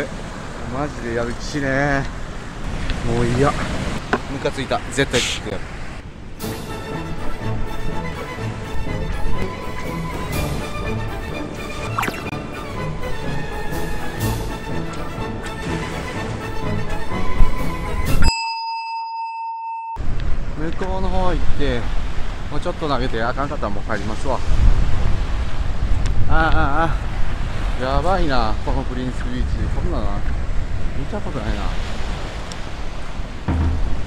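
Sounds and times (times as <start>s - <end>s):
surf breaking on a beach: 0.0s - 6.4s, 20.0s - 34.0s
electronic bell ding: 18.2s - 20.0s
wind rumble on microphone: 20.0s - 34.0s
low thump: 33.5s - 34.0s.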